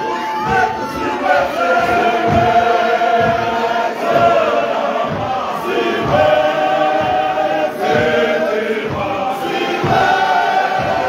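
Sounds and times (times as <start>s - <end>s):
feet stamping: 0.0s - 11.0s
male voice choir singing: 0.0s - 11.0s.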